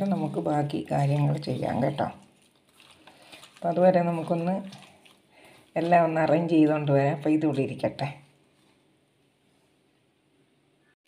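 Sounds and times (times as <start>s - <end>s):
woman speaking: 0.0s - 2.3s, 3.6s - 4.9s, 5.8s - 8.3s
mixing by hand in steel bowl: 0.0s - 8.8s.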